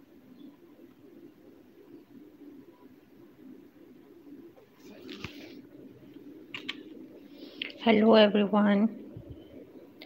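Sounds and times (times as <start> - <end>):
pigeons cooing: 0.0 - 7.6.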